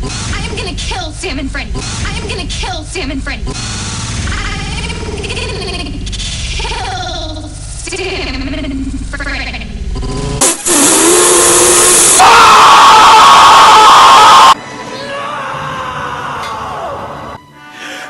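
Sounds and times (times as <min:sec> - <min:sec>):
loud distorted scream: 0:10.4 - 0:17.2.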